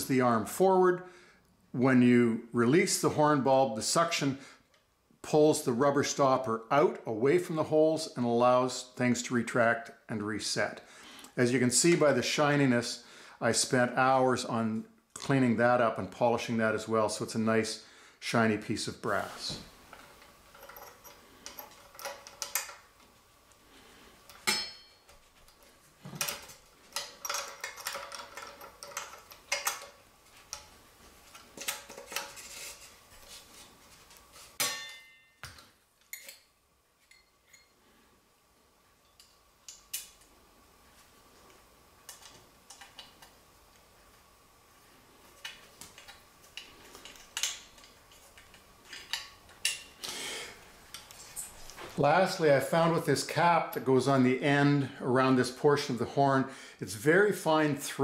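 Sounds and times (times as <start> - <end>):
metal parts clinking: 20.0 - 22.8, 26.2 - 30.6.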